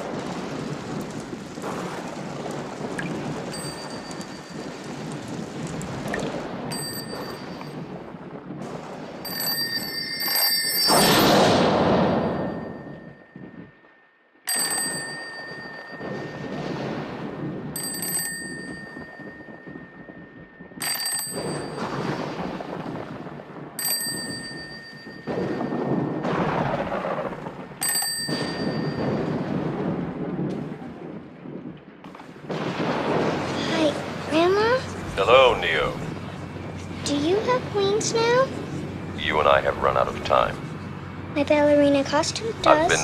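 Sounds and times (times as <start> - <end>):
steady rumbling noise: 0.0 - 43.0
toy telephone bell ringing: 17.8 - 19.2, 20.8 - 21.7.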